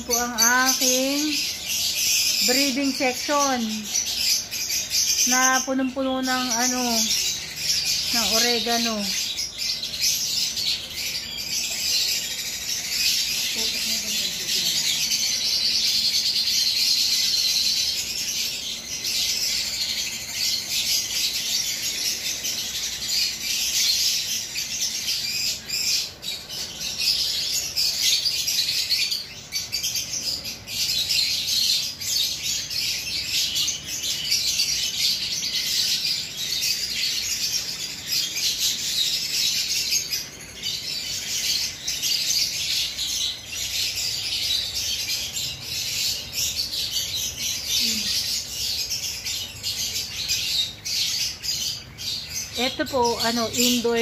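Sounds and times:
small birds chirping and twittering: 0.0 - 54.0.

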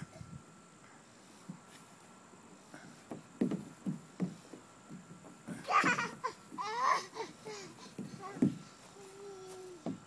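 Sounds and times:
thumps on plastic slide: 3.1 - 6.0.

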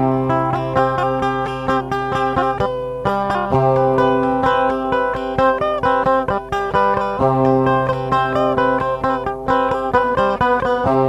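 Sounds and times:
plucked string instrument: 0.0 - 11.0.

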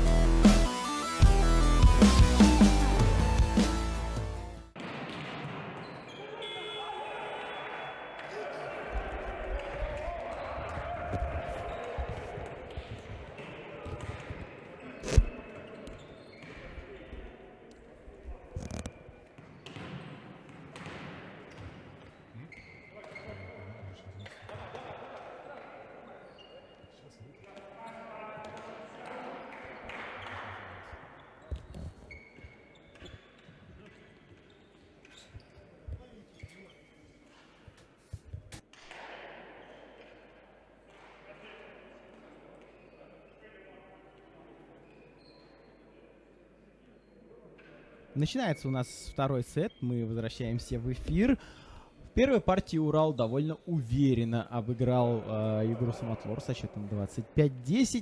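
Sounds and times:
volleyballs hit and bouncing: 4.8 - 6.2, 9.6 - 15.8, 19.2 - 22.2, 38.5 - 41.1
people's voices: 8.2 - 15.9.

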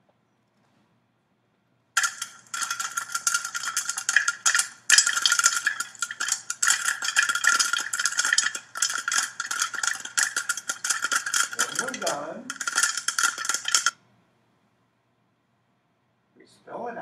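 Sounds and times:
kernels rattling in a pot: 2.0 - 14.0
popcorn popping: 2.0 - 14.0.

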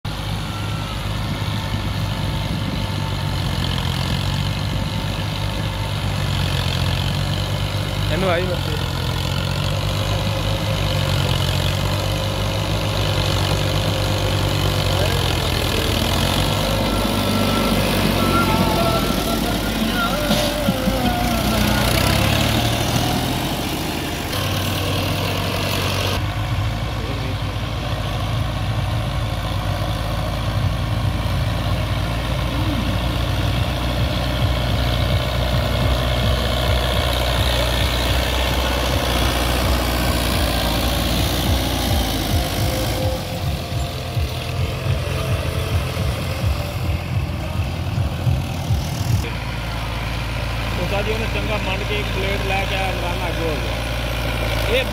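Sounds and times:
tractor diesel engines droning: 0.0 - 54.9.

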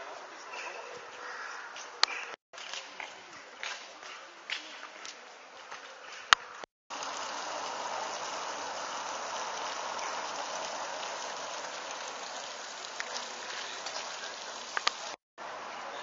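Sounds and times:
steady rushing hiss: 6.9 - 15.2.

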